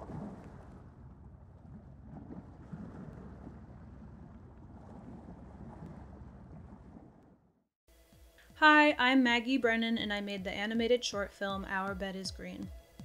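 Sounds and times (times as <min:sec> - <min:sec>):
low hum: 0:00.0 - 0:07.6.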